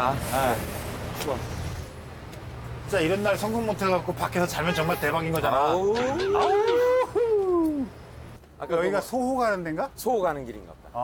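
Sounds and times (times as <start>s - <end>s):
howling wail: 6.0s - 7.9s.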